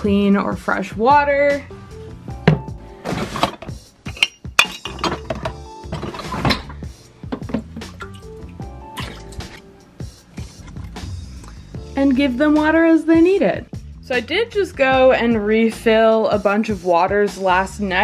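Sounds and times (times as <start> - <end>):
background music: 0.0 - 18.0
water dishes clinking: 3.4 - 8.3
water sloshing in dishes: 4.2 - 9.7.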